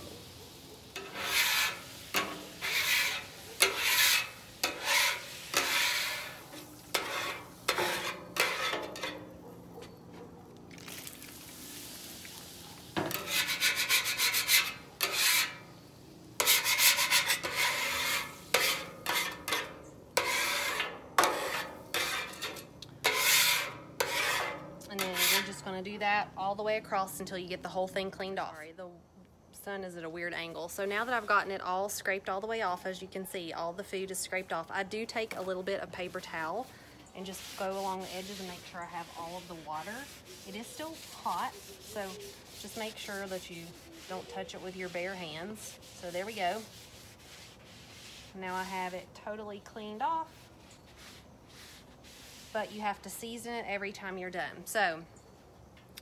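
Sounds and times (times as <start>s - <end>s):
metal scraper rasping on griddle: 0.9s - 9.4s, 13.0s - 15.7s, 16.4s - 25.7s, 35.3s - 49.0s.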